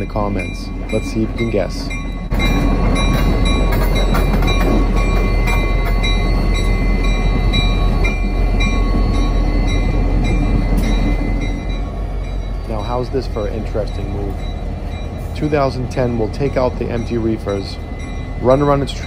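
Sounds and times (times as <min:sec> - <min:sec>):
locomotive engine droning: 0:00.0 - 0:19.0.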